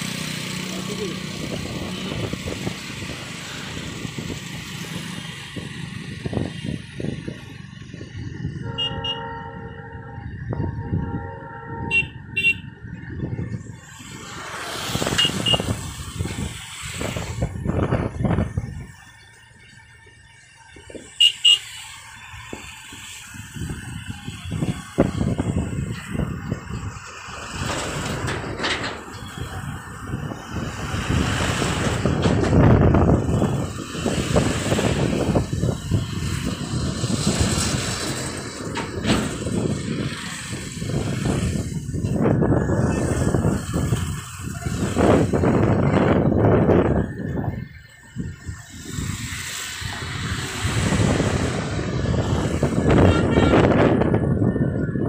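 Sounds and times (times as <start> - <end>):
motorcycle and scooter engines: 0.0 - 55.0
wind: 0.0 - 55.0
vehicle horn: 8.6 - 12.7, 15.1 - 15.8, 21.2 - 21.8, 52.8 - 54.0.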